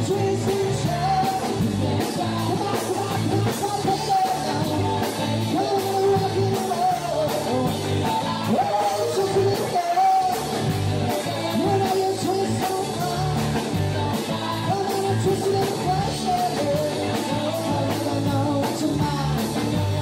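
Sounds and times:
man singing into a microphone: 0.0 - 20.0.

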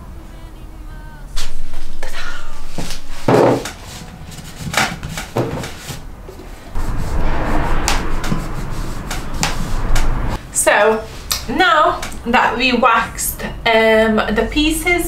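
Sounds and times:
rubbing and scraping: 1.3 - 10.4
objects knocking on wooden workbench: 3.3 - 3.8, 4.7 - 5.9.

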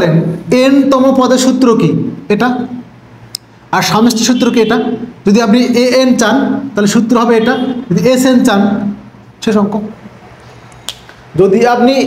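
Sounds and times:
man speaking: 0.0 - 2.9, 3.7 - 10.1, 11.3 - 12.0.

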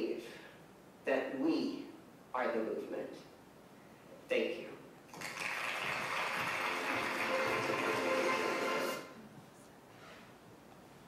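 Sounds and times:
audience applause: 5.1 - 9.1.

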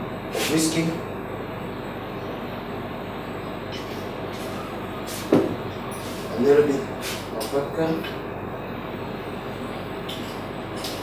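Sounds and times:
steady background noise: 0.0 - 11.0
sharp knock on table: 5.3 - 5.6.

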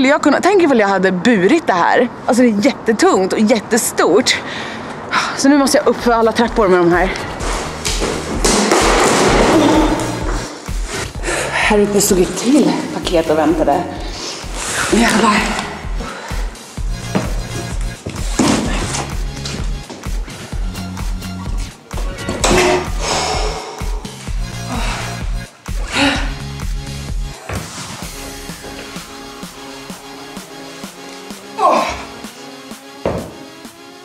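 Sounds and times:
background music with beat: 5.9 - 34.0.

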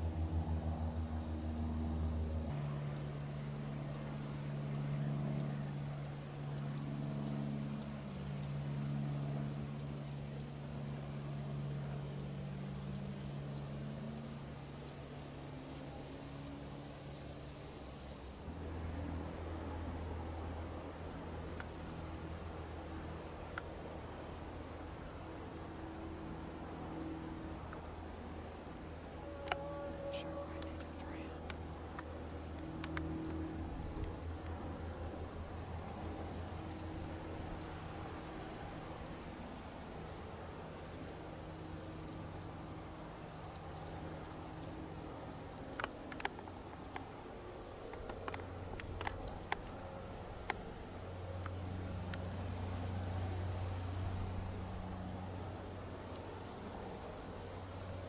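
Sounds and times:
insects chirping: 0.0 - 58.0
faint clicks: 45.7 - 47.1, 47.9 - 49.8.

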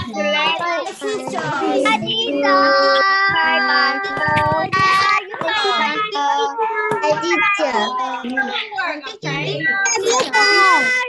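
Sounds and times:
children calling out sing-song: 0.0 - 11.0.

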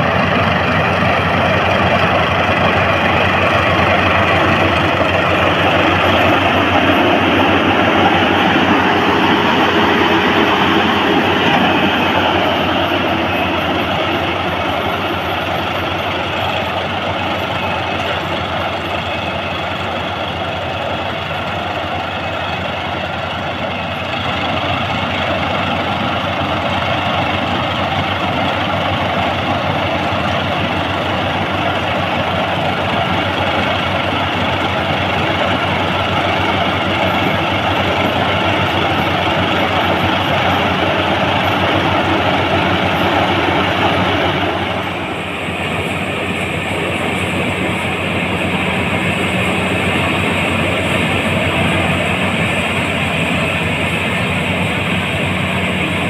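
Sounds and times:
combine harvester running: 0.0 - 56.0.

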